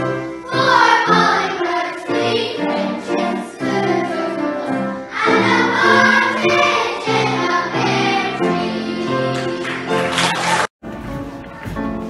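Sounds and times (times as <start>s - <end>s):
children's choir singing: 0.0s - 10.7s.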